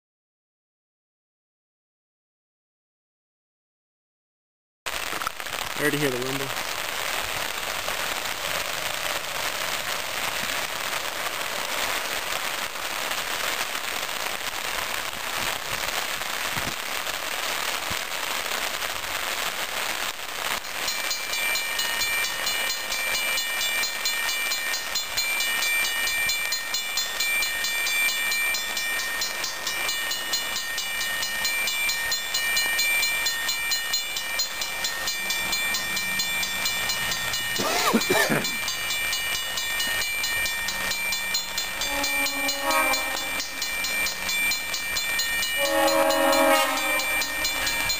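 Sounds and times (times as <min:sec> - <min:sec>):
rain on a wet road: 0:04.9 - 0:41.8
railroad crossing bell ringing: 0:20.6 - 0:47.9.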